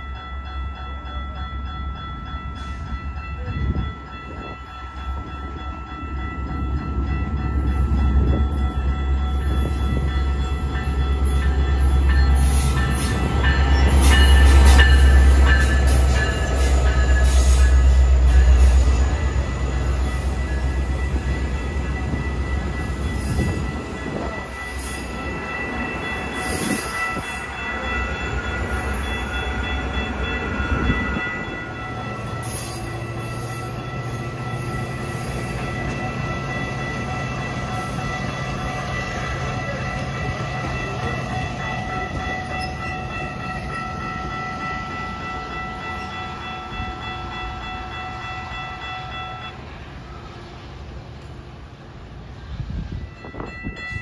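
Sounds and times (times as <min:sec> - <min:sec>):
train rumbling: 0:00.0 - 0:54.0.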